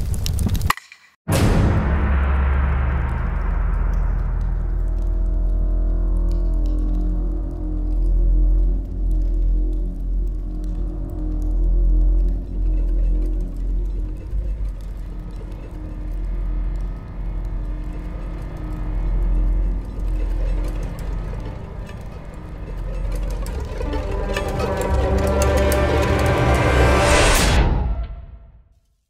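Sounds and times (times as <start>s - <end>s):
deep bass drone: 1.3s - 28.2s.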